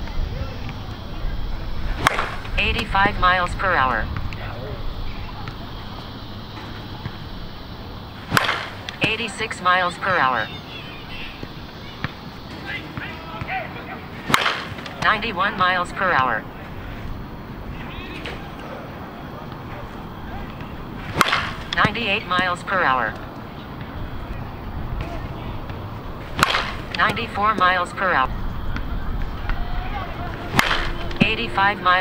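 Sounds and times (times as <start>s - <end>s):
low outdoor rumble: 0.0s - 32.0s.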